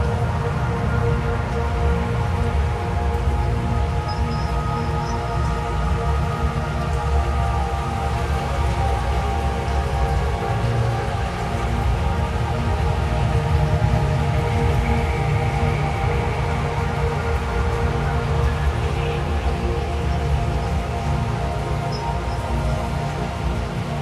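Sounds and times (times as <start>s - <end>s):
dark ambient drone music: 0.0s - 24.0s.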